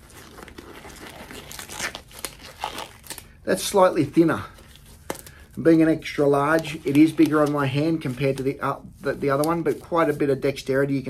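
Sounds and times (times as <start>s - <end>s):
nitrile glove rustling and crinkling: 0.0s - 11.0s.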